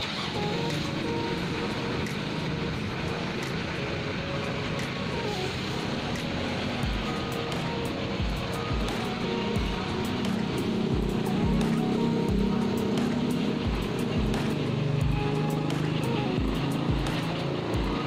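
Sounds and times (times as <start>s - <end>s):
faint background music: 0.0s - 18.0s
street traffic: 0.0s - 18.0s.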